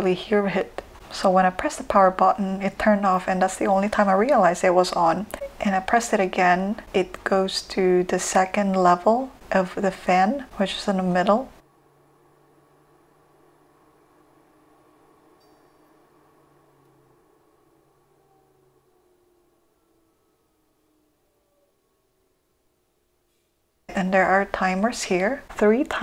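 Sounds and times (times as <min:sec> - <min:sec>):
air purifier fan running: 0:00.0 - 0:20.3.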